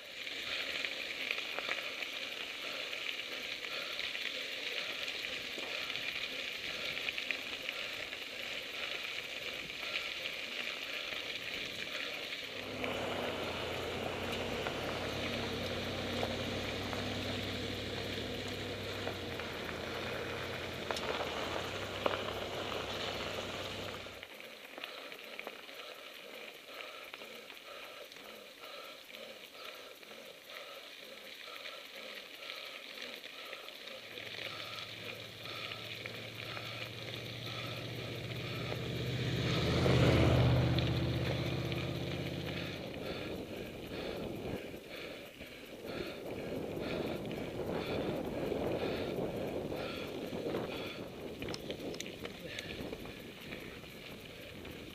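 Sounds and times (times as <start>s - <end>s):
bike tyres crunching on gravel: 0.0s - 54.9s
low hum: 12.4s - 24.2s, 34.1s - 54.9s
faint even ticking: 12.4s - 24.3s, 25.1s - 54.9s
low rumble: 12.5s - 24.2s, 34.3s - 44.8s.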